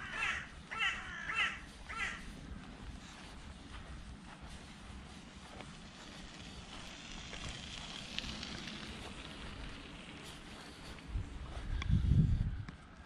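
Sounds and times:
soft outdoor hiss: 0.0s - 13.0s.

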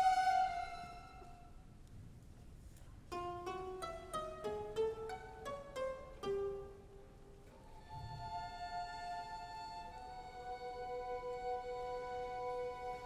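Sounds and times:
chamber orchestra playing: 0.0s - 1.3s, 8.2s - 13.0s.

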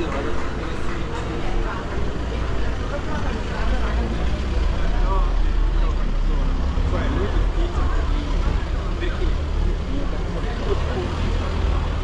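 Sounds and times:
car engines rumbling past: 0.0s - 12.0s
people talking: 0.0s - 12.0s.

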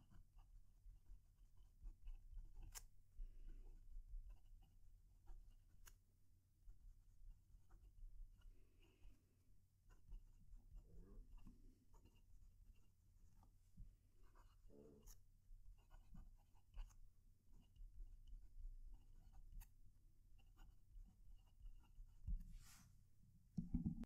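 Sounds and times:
fountain pen scratching on paper: 0.0s - 22.8s.

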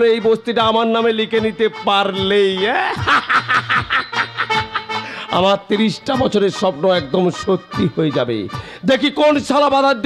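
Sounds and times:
music: 0.0s - 10.0s
man laughing loudly: 2.7s - 5.4s.

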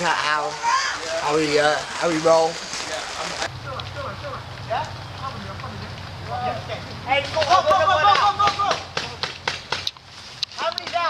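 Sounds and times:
people shouting: 0.3s - 1.4s, 6.4s - 9.4s.

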